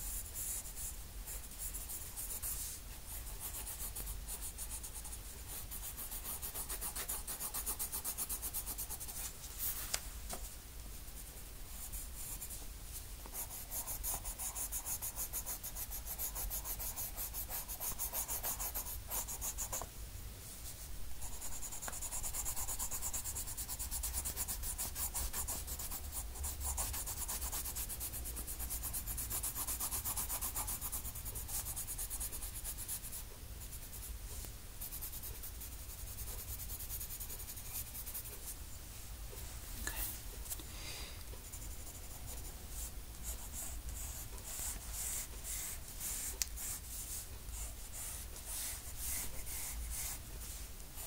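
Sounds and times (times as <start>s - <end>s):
colour pencil shading on paper: 0.0s - 9.3s, 13.3s - 19.8s, 21.2s - 34.1s, 34.8s - 38.6s, 41.4s - 51.0s.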